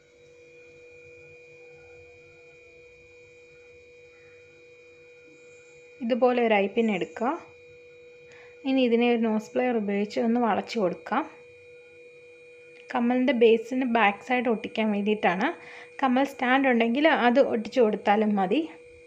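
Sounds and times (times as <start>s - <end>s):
faint electrical hum: 0.0s - 19.0s
woman speaking: 6.0s - 7.5s, 8.7s - 11.4s, 12.9s - 18.8s.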